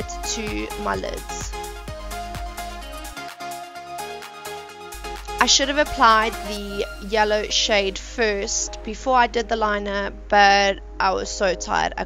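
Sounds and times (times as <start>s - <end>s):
electronic music with steady beat: 0.0s - 7.6s.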